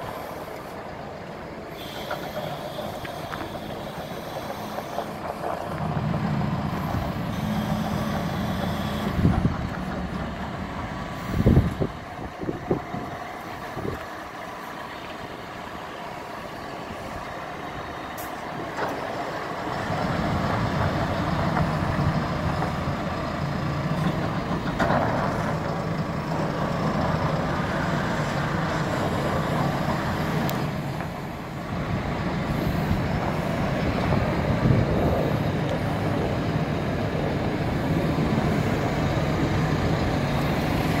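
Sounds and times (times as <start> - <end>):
tractor diesel engine: 0.0 - 41.0.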